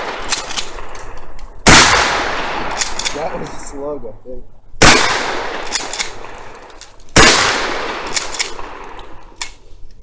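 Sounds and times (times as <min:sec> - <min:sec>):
shotgun shot with echo: 0:01.6 - 0:03.4, 0:04.8 - 0:06.5, 0:07.2 - 0:08.8.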